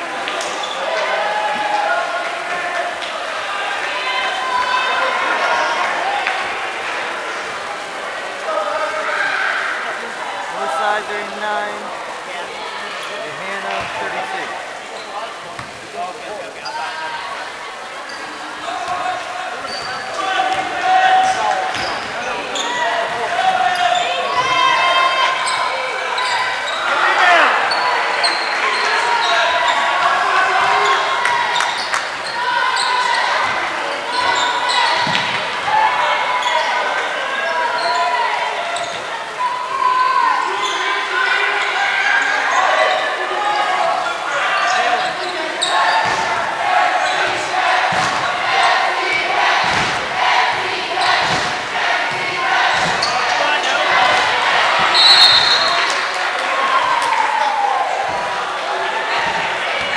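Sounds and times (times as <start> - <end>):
overlapping voices: 0.0 - 59.9.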